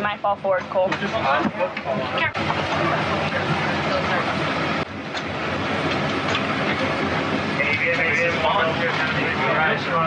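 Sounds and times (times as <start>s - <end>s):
airliner cabin ventilation hum: 0.0s - 10.0s
faint voices: 0.0s - 10.0s.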